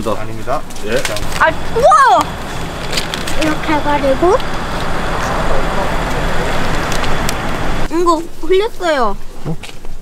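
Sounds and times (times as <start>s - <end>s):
road traffic rumble: 0.0s - 8.1s.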